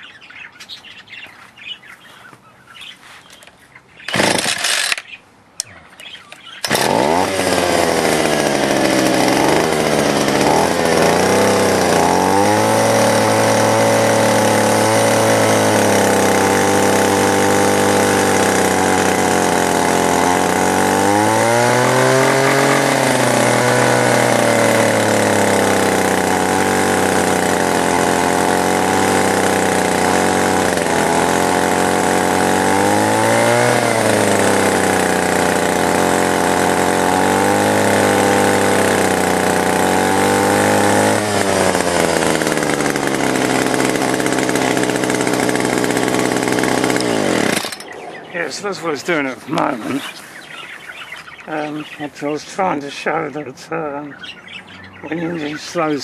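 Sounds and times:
small two-stroke engine running: 0:04.0 - 0:05.2, 0:06.0 - 0:53.2, 0:54.2 - 0:56.0.

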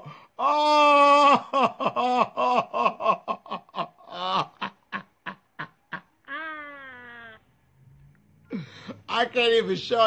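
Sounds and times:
man laughing: 0:01.2 - 0:07.4.

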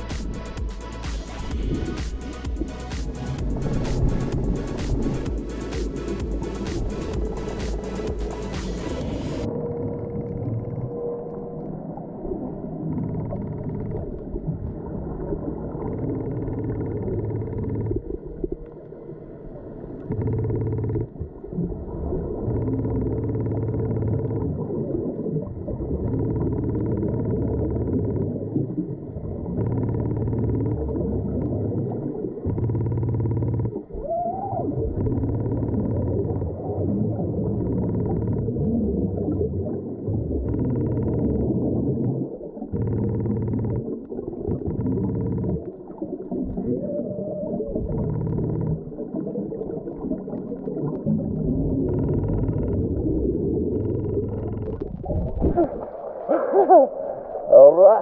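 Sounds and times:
steady low rumble: 0:00.0 - 0:33.9
bubbles gushing: 0:33.8 - 0:58.0.

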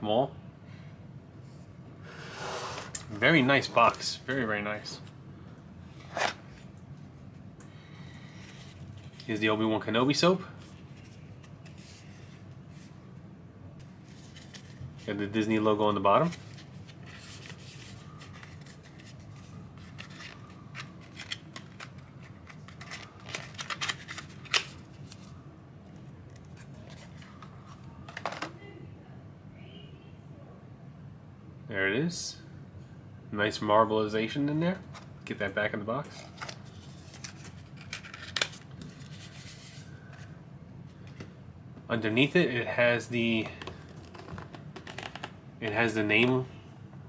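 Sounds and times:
card rustling: 0:08.1 - 0:09.4, 0:10.6 - 0:12.9, 0:13.8 - 0:28.5, 0:36.1 - 0:40.3, 0:43.2 - 0:46.4.

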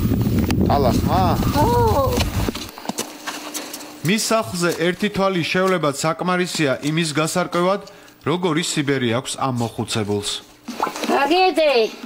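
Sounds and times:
footsteps in snow: 0:01.3 - 0:07.8.

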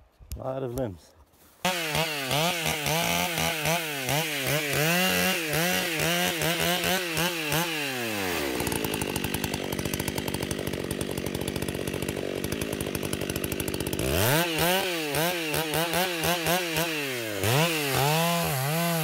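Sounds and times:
chainsaw revving and idling: 0:01.6 - 0:19.0.

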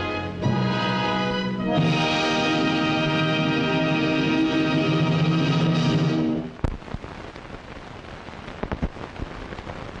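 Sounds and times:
film soundtrack hiss: 0:00.0 - 0:10.0
crackles and pops: 0:06.2 - 0:10.0.

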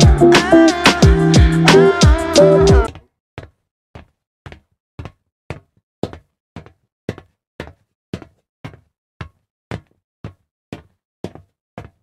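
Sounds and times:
footsteps on concrete: 0:02.8 - 0:12.0.

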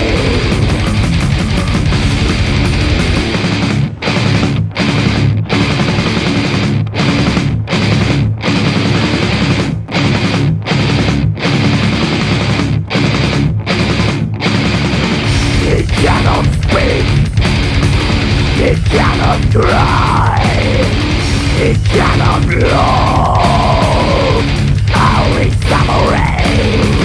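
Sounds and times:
death metal band playing: 0:00.0 - 0:27.0.

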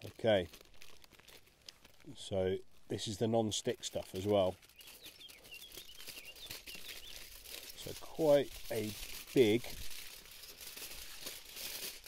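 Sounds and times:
aluminium foil crinkling: 0:00.0 - 0:12.0
bird chirping: 0:04.6 - 0:07.4.

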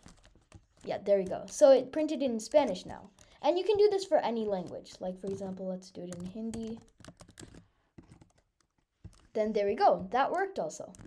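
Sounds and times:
faint keyboard keystrokes: 0:04.4 - 0:09.4.

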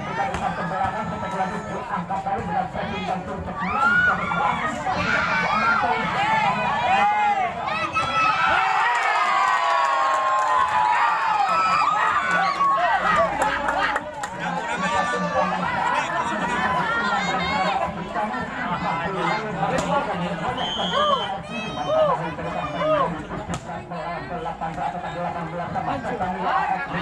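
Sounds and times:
crowd shouting and chattering: 0:00.0 - 0:27.0.

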